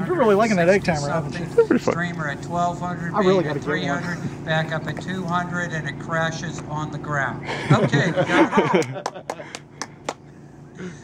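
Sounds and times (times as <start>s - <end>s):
man laughing: 7.5s - 9.6s.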